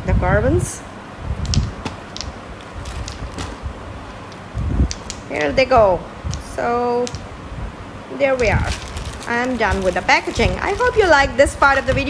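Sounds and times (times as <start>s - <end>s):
handling noise: 1.3s - 5.7s, 8.2s - 12.0s
plastic balls clicking together: 1.4s - 3.6s, 4.2s - 5.6s, 6.3s - 7.3s.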